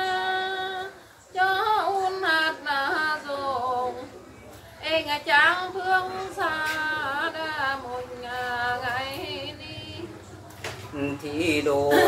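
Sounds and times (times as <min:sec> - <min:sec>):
woman singing unaccompanied: 0:00.0 - 0:04.2, 0:04.8 - 0:10.3.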